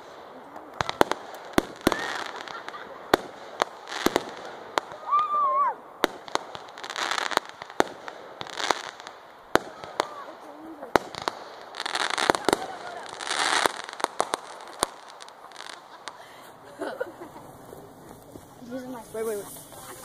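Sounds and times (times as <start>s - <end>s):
fireworks bangs: 0.0s - 20.0s
fireworks crackling: 0.0s - 20.0s.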